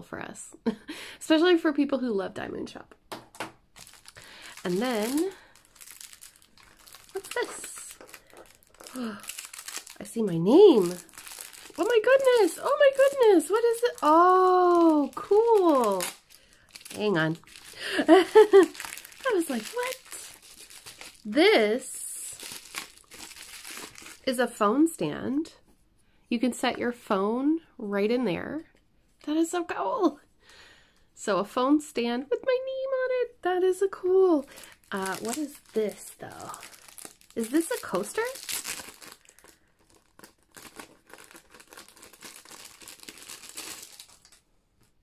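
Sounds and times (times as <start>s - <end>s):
bubble wrap crinkling: 3.3s - 24.4s, 34.4s - 45.0s.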